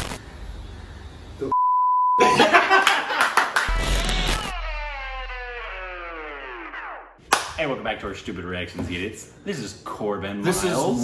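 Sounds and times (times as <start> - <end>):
high electronic bleep: 3.7 - 7.2
tones sliding downward: 3.7 - 7.2.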